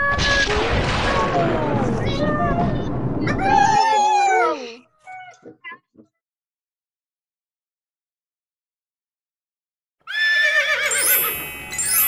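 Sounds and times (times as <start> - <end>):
horse whinny: 10.1 - 11.1
rising chime-like music shimmer: 10.9 - 12.0.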